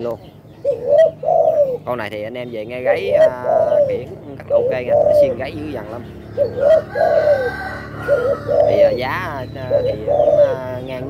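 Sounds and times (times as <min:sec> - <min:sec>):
dove cooing: 0:00.0 - 0:11.0.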